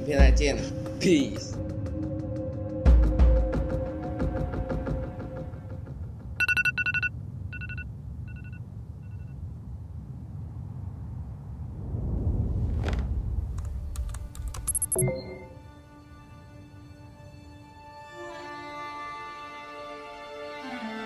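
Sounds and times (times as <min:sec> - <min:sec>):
short high beep: 0:06.4 - 0:09.2, 0:14.7 - 0:15.5
trilling phone ringtone: 0:06.4 - 0:09.3
low rumble: 0:10.1 - 0:14.7.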